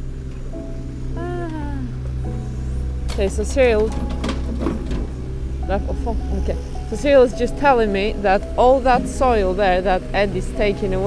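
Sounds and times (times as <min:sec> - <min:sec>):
diesel engine droning: 0:00.0 - 0:11.0
people talking: 0:01.2 - 0:02.0, 0:03.2 - 0:03.9, 0:05.7 - 0:11.0.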